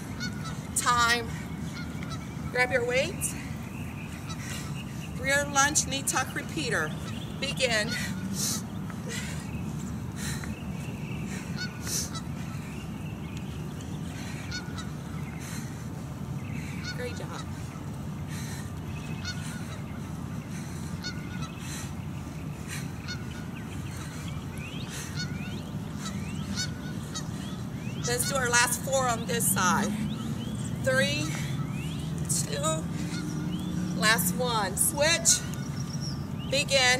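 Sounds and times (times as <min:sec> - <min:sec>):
steady low rumble: 0:00.0 - 0:36.9.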